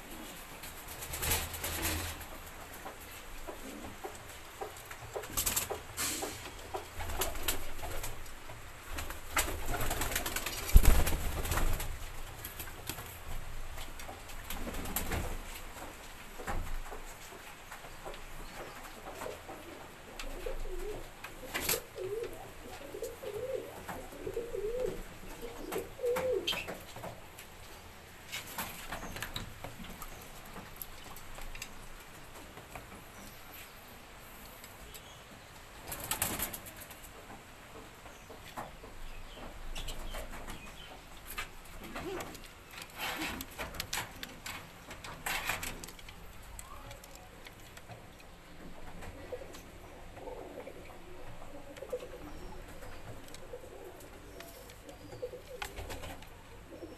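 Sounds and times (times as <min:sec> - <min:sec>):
pigeons cooing: 0:19.0 - 0:26.8, 0:41.8 - 0:46.0, 0:48.7 - 0:56.9.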